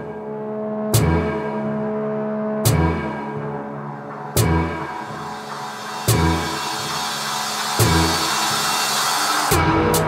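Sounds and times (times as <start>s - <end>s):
steady bass line: 0.0s - 10.0s
sharp percussion hits: 4.2s - 10.0s
hiss: 5.9s - 9.6s.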